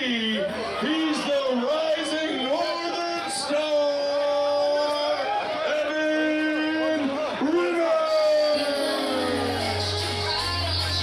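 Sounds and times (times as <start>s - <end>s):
announcer's voice over loudspeaker: 0.0s - 11.0s
bass of entrance music: 8.6s - 11.0s.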